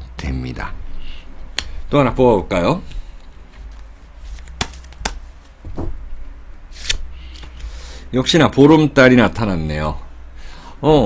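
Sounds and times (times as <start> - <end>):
cards clicking and tapping: 3.7 - 5.3
card swishing onto table: 4.2 - 5.4.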